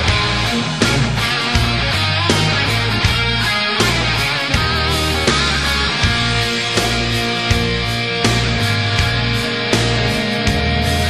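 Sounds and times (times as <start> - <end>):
bass: 0.0 - 11.0
distorted electric guitar: 0.0 - 11.0
keyboards: 0.0 - 11.0.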